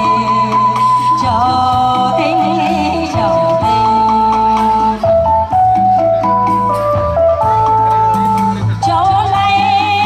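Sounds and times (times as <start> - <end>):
woman singing with vibrato: 0.0 - 5.4, 8.8 - 10.0
backing track with steady bass: 0.0 - 10.0.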